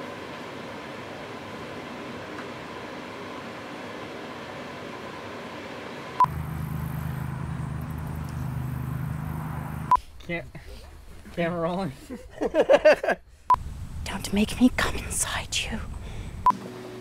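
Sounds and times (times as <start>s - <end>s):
low steady hum: 0.0s - 16.5s.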